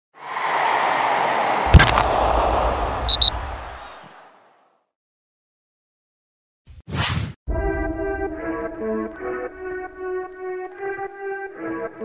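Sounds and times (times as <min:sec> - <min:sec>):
short high-pitched bleeps: 0:03.1 - 0:03.3.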